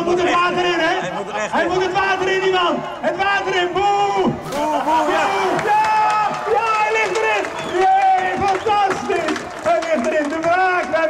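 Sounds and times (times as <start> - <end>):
men yelling and cheering: 0.0 - 11.0
crowd shouting: 1.5 - 9.9.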